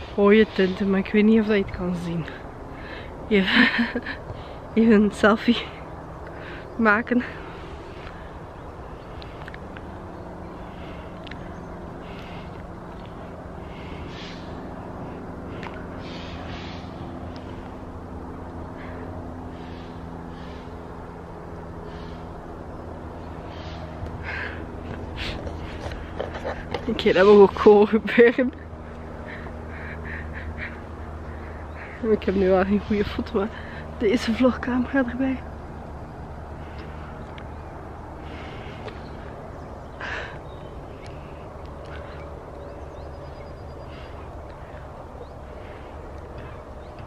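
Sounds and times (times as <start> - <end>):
steady low rumble: 0.0 - 47.0
faint bird calls: 13.2 - 17.7, 18.6 - 20.8.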